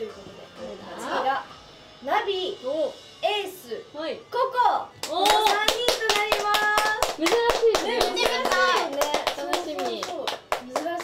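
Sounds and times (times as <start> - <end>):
people clapping quickly: 5.0 - 11.0.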